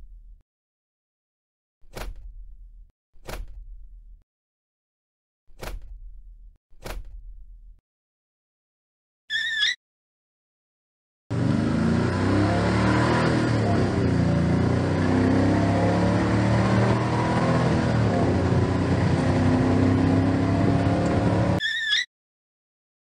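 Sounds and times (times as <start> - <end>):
vehicle engine revving: 11.3 - 21.6.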